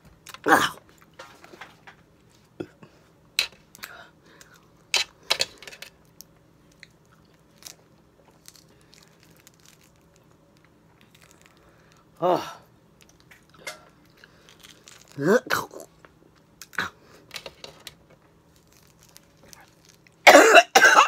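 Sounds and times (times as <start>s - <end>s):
biting and mouth noises: 18.5s - 20.2s.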